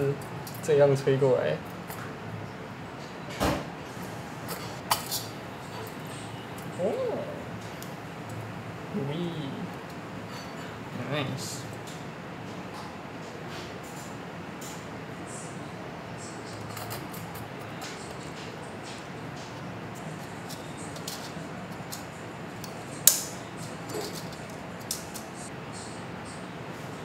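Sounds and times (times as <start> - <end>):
steady background noise: 0.0 - 27.0.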